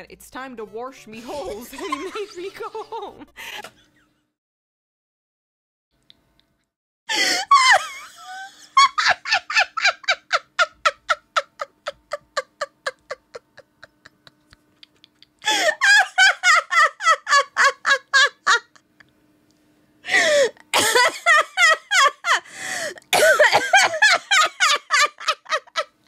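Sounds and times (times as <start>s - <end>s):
woman laughing: 1.1s - 3.9s, 7.1s - 19.0s, 20.1s - 26.0s.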